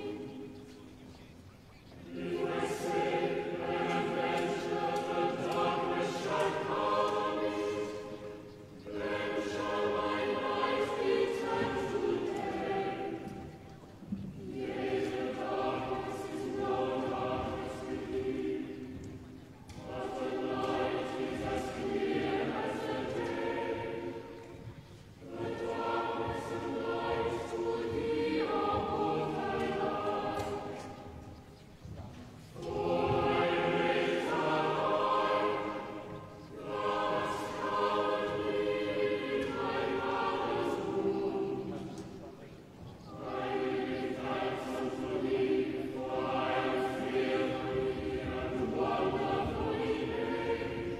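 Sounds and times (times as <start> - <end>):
choir singing: 0.0 - 50.9.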